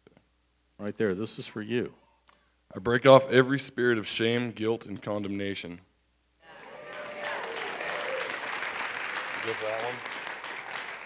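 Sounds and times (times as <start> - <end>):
congregation applauding: 6.5 - 11.0
voices: 6.5 - 11.0.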